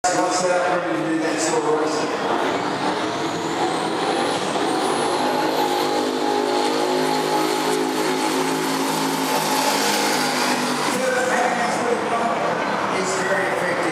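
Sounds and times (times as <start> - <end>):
race car engines at full throttle: 0.0 - 13.9.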